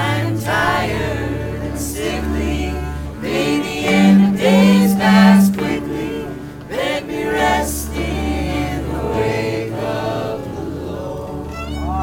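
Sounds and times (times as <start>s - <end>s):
voices singing together: 0.0s - 12.0s
upright bass note: 3.8s - 6.3s.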